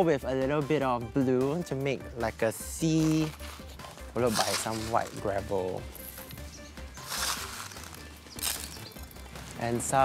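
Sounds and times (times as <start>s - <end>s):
background music: 0.0s - 10.0s
gravel pouring hiss: 4.3s - 5.2s, 7.0s - 8.8s.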